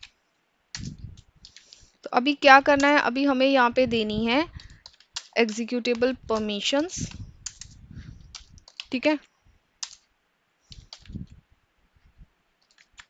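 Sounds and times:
keyboard key clicks: 0:09.8 - 0:10.0.

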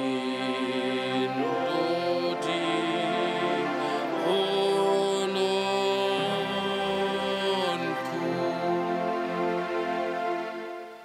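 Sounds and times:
men singing a hymn: 0:00.0 - 0:09.8.

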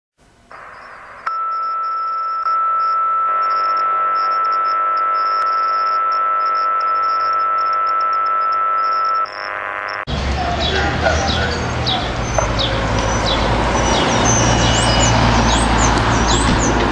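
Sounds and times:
electronic drone: 0:00.5 - 0:10.4.

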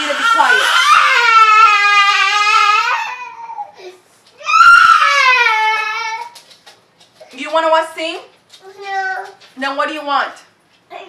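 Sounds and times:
boy crying: 0:00.0 - 0:06.4.

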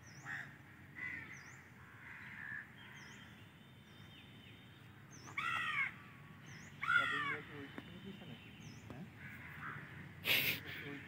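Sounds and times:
bird cawing: 0:00.1 - 0:03.4, 0:05.2 - 0:07.8, 0:09.0 - 0:11.0.

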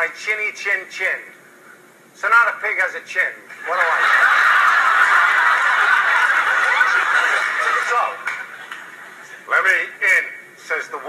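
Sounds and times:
studio audience laughing: 0:03.5 - 0:09.5.

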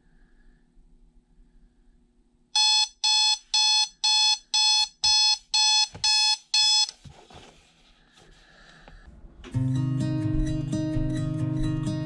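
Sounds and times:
alarm clock beeping: 0:02.6 - 0:06.9.

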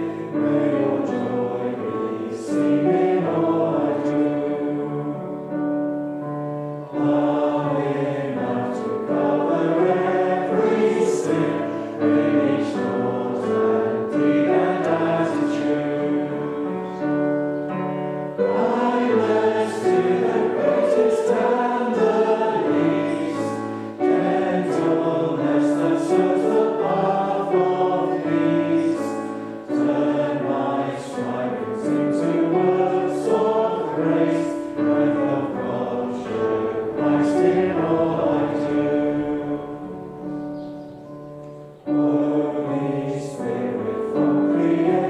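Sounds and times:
congregation singing a hymn: 0:00.0 - 0:45.0
instrumental accompaniment: 0:00.0 - 0:45.0.

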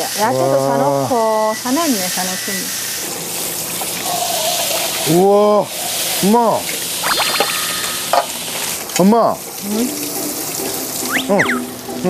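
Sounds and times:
beef sizzling on grill pan: 0:00.0 - 0:11.9
high ringing tone: 0:07.0 - 0:08.2.

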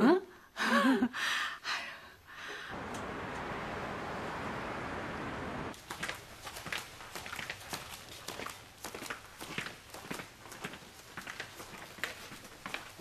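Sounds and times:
steady hiss: 0:02.7 - 0:05.8.

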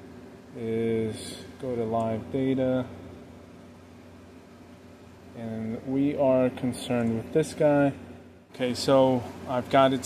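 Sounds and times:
faint hum and hiss: 0:00.0 - 0:10.0.

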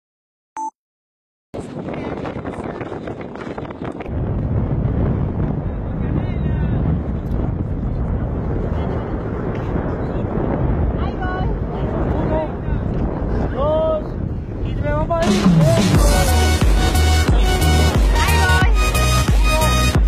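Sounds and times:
wind buffeting microphone: 0:01.6 - 0:20.0.

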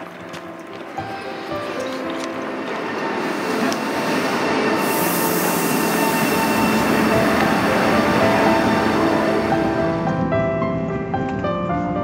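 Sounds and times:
background music: 0:00.0 - 0:12.0
passenger train noise: 0:00.0 - 0:12.0
high hiss: 0:03.2 - 0:08.3.

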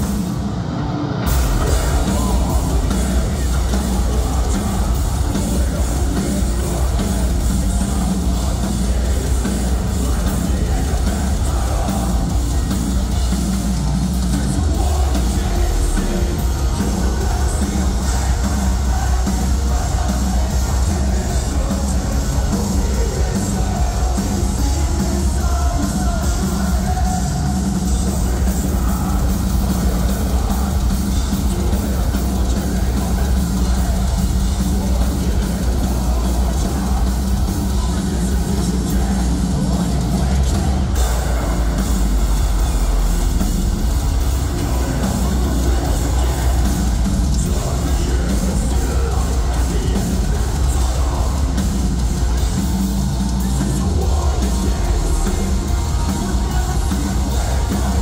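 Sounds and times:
drums: 0:00.0 - 0:58.0
heavy guitars: 0:00.0 - 0:58.0
vocals: 0:00.0 - 0:58.0.

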